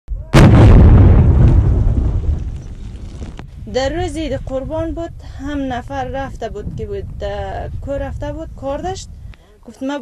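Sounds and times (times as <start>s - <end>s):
explosion blast with rumble: 0.2s - 5.2s.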